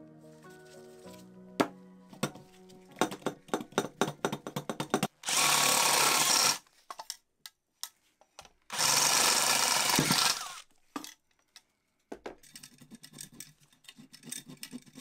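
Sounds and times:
cordless drill running: 0:05.2 - 0:06.6, 0:08.7 - 0:10.6.

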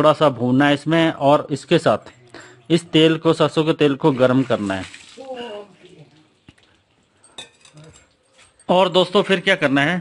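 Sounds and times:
man speaking: 0:00.0 - 0:05.6.

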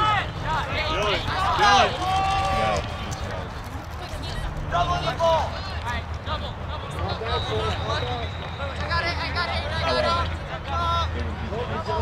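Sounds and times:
spectator shouting: 0:00.0 - 0:02.8.

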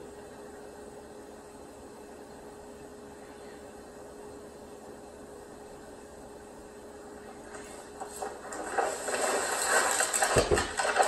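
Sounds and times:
noisy crackling sound: 0:00.0 - 0:11.0.

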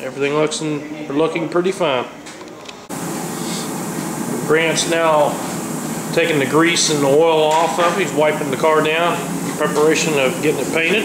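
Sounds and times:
ventilation air rushing: 0:02.9 - 0:11.0.

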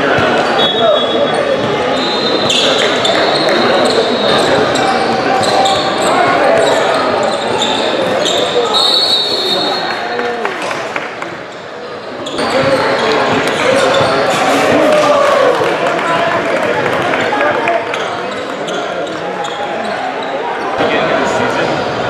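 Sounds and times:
sneakers squeaking: 0:00.0 - 0:10.1, 0:11.5 - 0:14.8, 0:17.9 - 0:20.9
crowd voices chattering and calling: 0:00.0 - 0:22.0.

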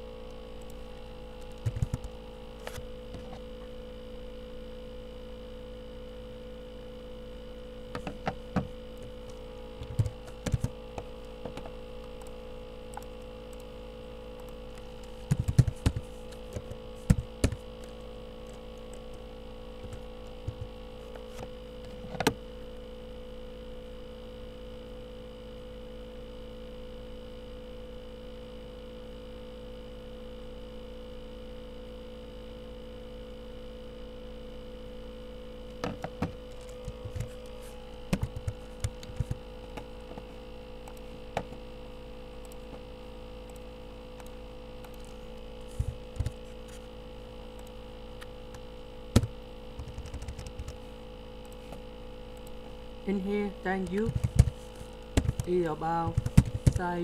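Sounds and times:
electrical hum: 0:00.0 - 0:57.0
keyboard and mouse clicks: 0:01.4 - 0:03.4, 0:14.4 - 0:18.6, 0:38.1 - 0:40.2, 0:49.1 - 0:50.8, 0:53.9 - 0:54.6, 0:55.2 - 0:55.5.

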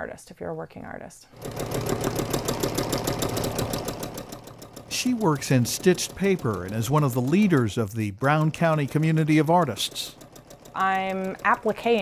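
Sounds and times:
sewing machine stitching: 0:01.3 - 0:12.0.

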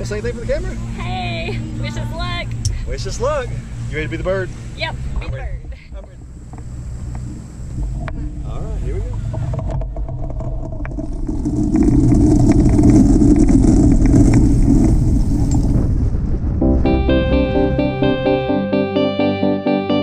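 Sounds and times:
wind noise: 0:05.0 - 0:18.0
wheels knocking over grass: 0:09.2 - 0:15.5
plane engine running: 0:16.6 - 0:20.0.

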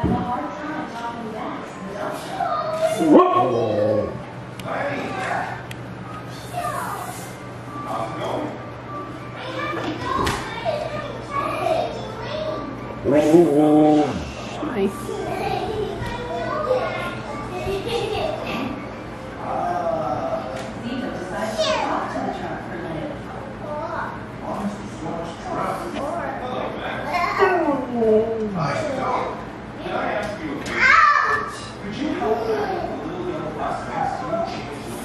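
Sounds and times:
young children's voices: 0:09.4 - 0:13.0, 0:15.1 - 0:18.6, 0:30.8 - 0:31.6.

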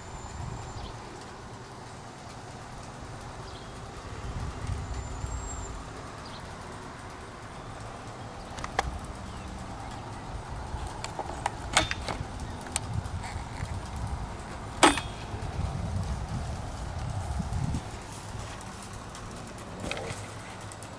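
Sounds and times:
sharp clicks and knocks: 0:06.1 - 0:20.9
camera handling rumble: 0:08.5 - 0:09.2, 0:10.0 - 0:20.9.

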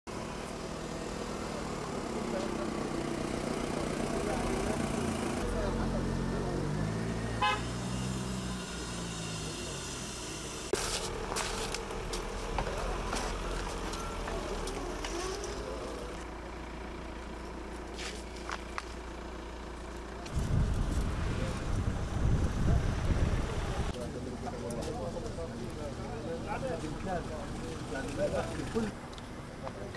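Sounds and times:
road vehicle: 0:00.0 - 0:29.9.

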